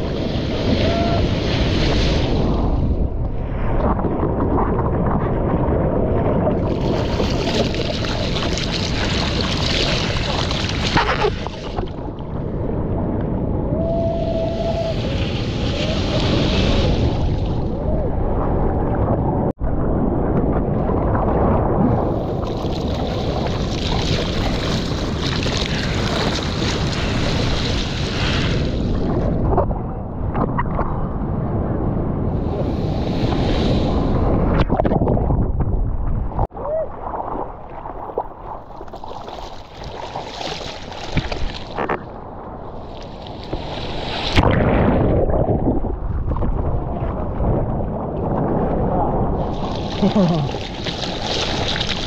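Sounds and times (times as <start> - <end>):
water churning and sloshing: 6.5 - 12.3, 22.0 - 29.3, 34.5 - 42.1, 42.8 - 52.0
rumble on microphone: 40.8 - 52.0.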